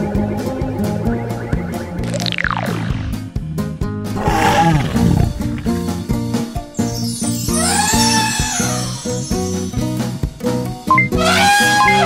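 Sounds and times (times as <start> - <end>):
background music with steady beat: 0.0 - 4.2
cartoon dinosaur roar: 4.2 - 5.8.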